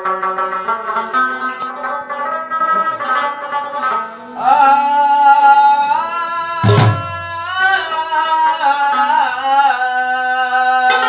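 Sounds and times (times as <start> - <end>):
plucked lute: 0.0 - 8.0, 10.5 - 11.0
man singing melismatic notes: 2.8 - 11.0.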